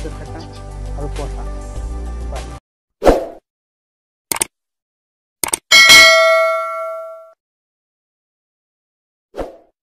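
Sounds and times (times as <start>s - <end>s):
bell-like ding: 5.7s - 7.4s.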